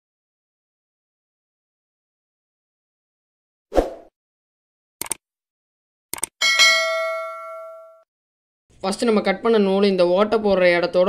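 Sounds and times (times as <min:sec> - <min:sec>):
short clicks: 0:05.0 - 0:05.2, 0:06.1 - 0:06.4
bright bell ding: 0:06.4 - 0:08.0.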